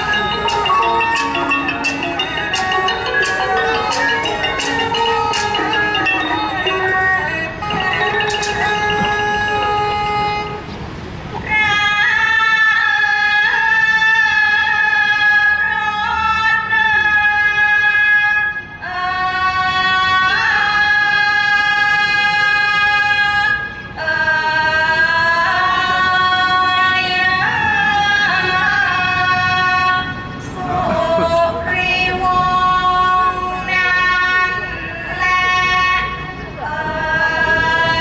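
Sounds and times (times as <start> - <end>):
woman singing long high notes: 0.0 - 10.7, 11.3 - 38.0
reed oboe holding long notes: 0.0 - 10.8.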